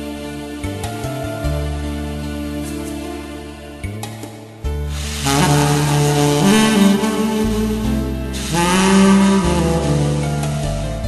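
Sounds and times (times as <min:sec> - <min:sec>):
karaoke backing track: 0:04.9 - 0:11.0
tenor saxophone melody: 0:04.9 - 0:11.0.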